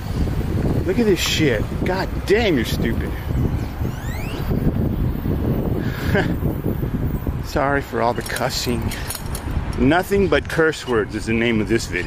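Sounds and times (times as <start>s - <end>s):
wind buffeting microphone: 0.0s - 12.0s
faint rising whistle: 3.9s - 4.5s.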